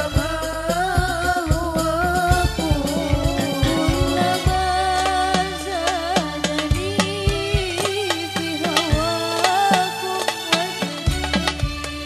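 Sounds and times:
woman singing into a microphone: 0:00.0 - 0:11.2
frame drums and hand drums: 0:00.0 - 0:12.0
sustained accompaniment: 0:00.0 - 0:12.0.

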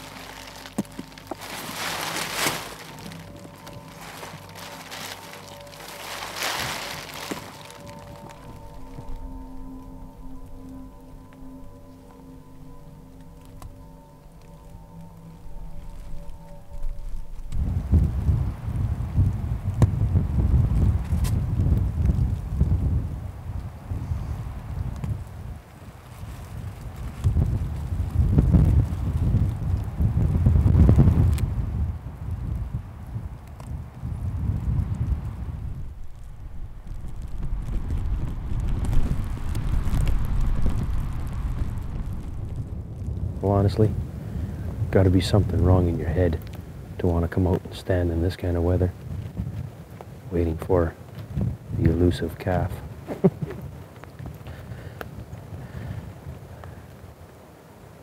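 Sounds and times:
held music notes: 0:00.0 - 0:21.3
gusting wind buffeting microphone: 0:00.0 - 0:58.0
rain falling: 0:00.0 - 0:58.0.

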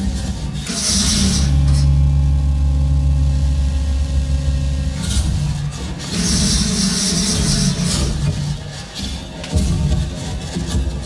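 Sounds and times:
deep bass drone: 0:00.0 - 0:08.8
harsh noise washes: 0:00.0 - 0:10.8.

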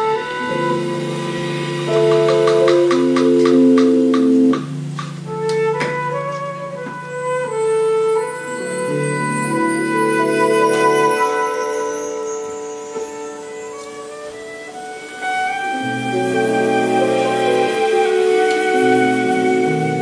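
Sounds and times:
flute melody: 0:00.0 - 0:20.0
live band accompaniment: 0:00.0 - 0:20.0.

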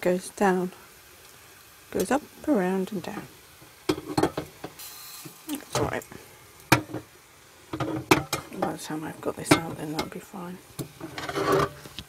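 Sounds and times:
metal kettle clunk on pan: 0:03.9 - 0:04.8, 0:06.7 - 0:07.1, 0:07.7 - 0:08.8, 0:09.4 - 0:10.2.

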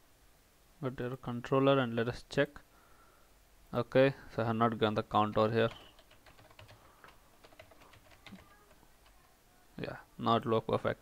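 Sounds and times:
keyboard typing: 0:05.2 - 0:09.2.

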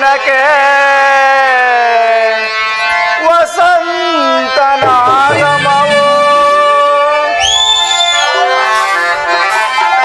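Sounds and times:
person singing long note: 0:04.8 - 0:07.2.

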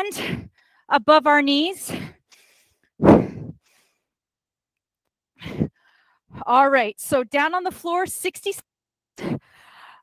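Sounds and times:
faint breath: 0:01.9 - 0:04.1, 0:09.2 - 0:10.0.

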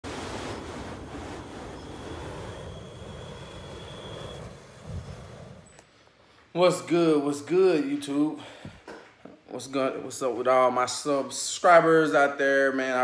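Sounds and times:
flamethrower jet rushing: 0:00.0 - 0:06.0.

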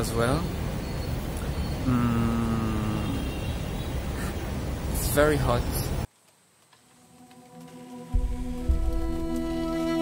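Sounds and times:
low rumble of city traffic: 0:00.0 - 0:06.6.

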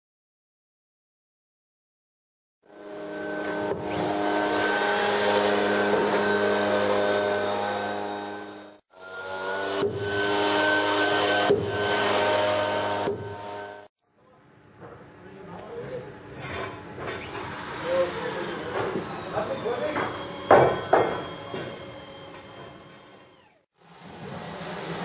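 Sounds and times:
motor running: 0:17.2 - 0:23.7
knocks: 0:19.9 - 0:21.3.

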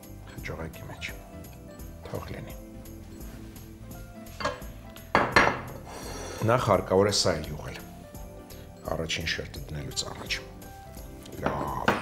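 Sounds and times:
background music: 0:00.0 - 0:12.0
dishes and utensils clattering: 0:04.3 - 0:05.9, 0:11.3 - 0:12.0
person speaking: 0:11.2 - 0:12.0.

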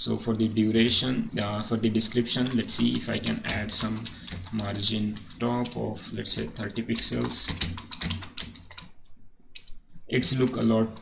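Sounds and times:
computer keyboard key clicks: 0:02.4 - 0:08.9.

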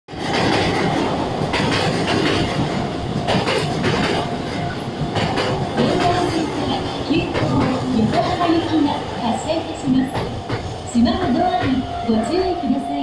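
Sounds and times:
wheels clacking over rail joints: 0:00.1 - 0:12.5
train rumble: 0:00.1 - 0:13.0.

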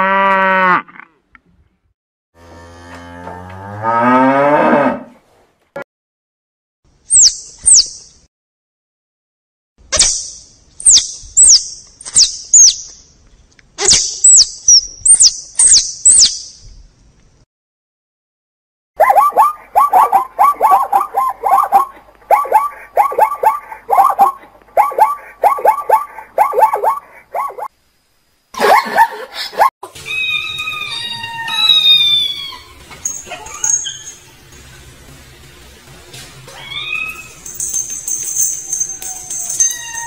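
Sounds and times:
zebras barking: 0:19.0 - 0:27.7
high-pitched falling cries: 0:29.8 - 0:34.4, 0:36.5 - 0:40.0.

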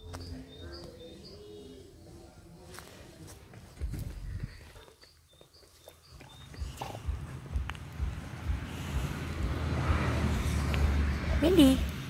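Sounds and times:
dog sniffing at the ground: 0:05.8 - 0:11.0.

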